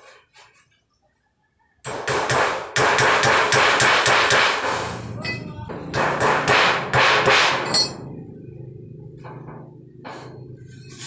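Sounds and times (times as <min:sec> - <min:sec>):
metal sheet clattering bangs: 0:03.3 - 0:08.0.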